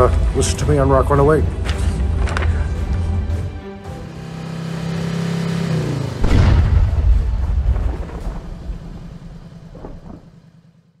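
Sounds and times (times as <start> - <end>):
low hum: 6.1 - 11.0
loud rumbling boom: 6.2 - 10.4.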